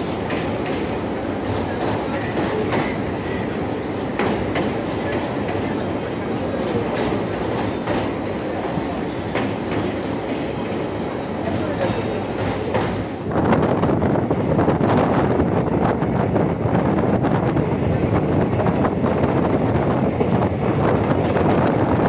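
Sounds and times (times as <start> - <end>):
train wheels rumbling on rail: 0.0 - 22.0.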